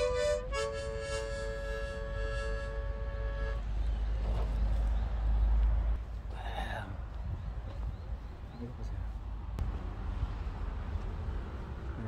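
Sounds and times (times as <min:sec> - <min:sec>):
harmonica chord: 0:00.0 - 0:03.7
wind rumble on microphone: 0:06.9 - 0:11.2.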